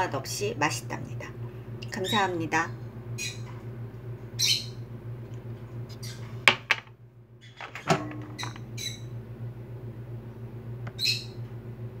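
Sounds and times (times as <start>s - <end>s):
high-pitched squawking calls: 4.4s - 4.8s, 8.4s - 9.1s, 11.0s - 11.4s
low hum: 7.0s - 12.0s.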